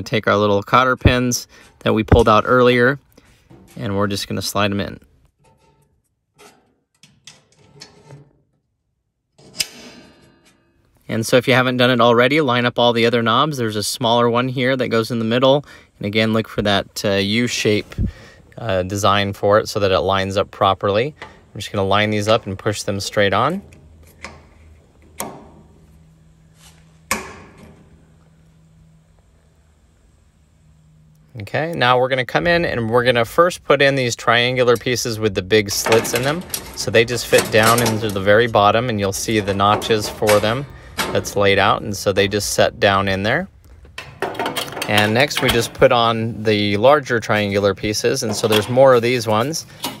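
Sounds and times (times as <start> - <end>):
faint steady hum: 0.0 - 50.0
metal hardware tapping and clicking: 23.6 - 25.8, 35.7 - 41.8, 43.6 - 45.9, 48.2 - 48.8.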